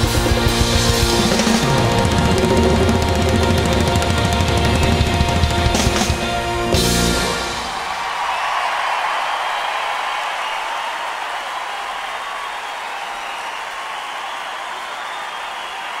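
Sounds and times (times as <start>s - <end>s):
large crowd applauding: 0.0s - 16.0s.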